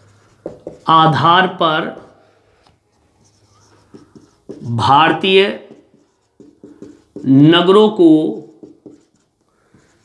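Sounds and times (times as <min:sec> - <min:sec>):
marker scratching on whiteboard: 0:00.0 - 0:10.0.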